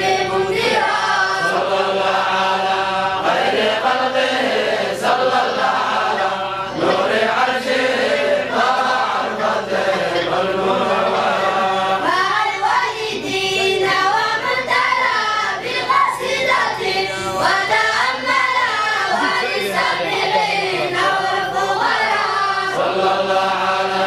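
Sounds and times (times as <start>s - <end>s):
boys chanting a devotional song: 0.0s - 24.0s.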